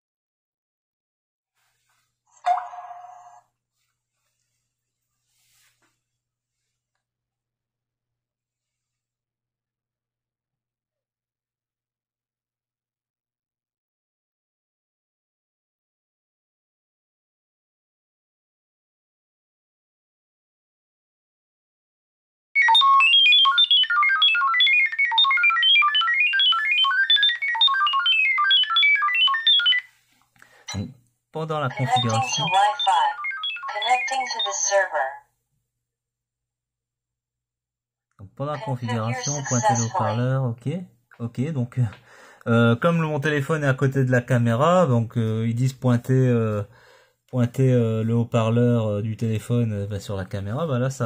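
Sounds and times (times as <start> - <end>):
electronic beep with rising sweep: 2.4 - 3.4
rapid beeping tones: 31.8 - 34.7.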